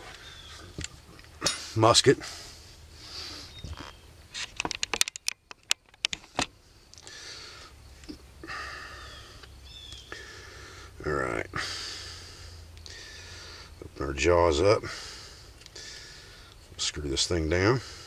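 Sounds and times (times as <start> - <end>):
sharp clicks of musket lock: 4.4 - 6.5.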